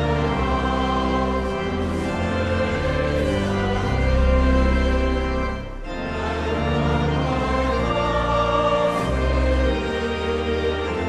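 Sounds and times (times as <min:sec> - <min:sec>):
choir singing a hymn: 0:00.0 - 0:11.0
instrumental accompaniment: 0:00.0 - 0:11.0.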